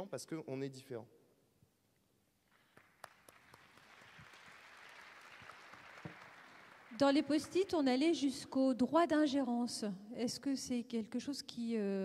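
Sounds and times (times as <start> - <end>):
faint audience applause: 2.5 - 7.7.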